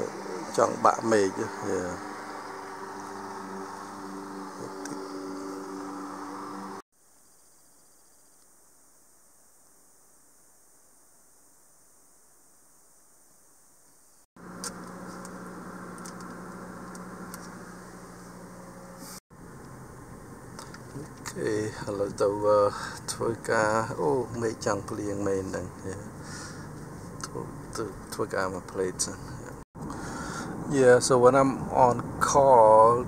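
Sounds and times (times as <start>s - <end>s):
road noise: 0.0s - 6.8s, 14.4s - 33.0s
mechanical hum with held tones: 14.4s - 22.3s
car cabin noise while driving: 14.4s - 33.0s.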